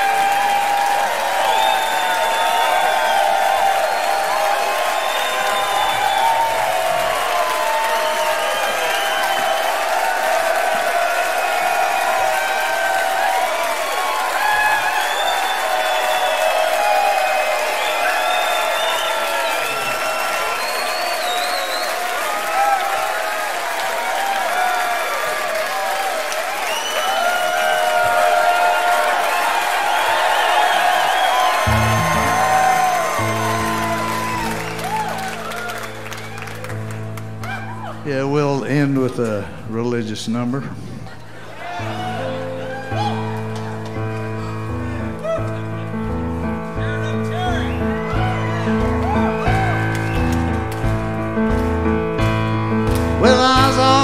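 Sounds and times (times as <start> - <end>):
audience applauding and cheering: 0.0 - 40.0, 41.1 - 54.0.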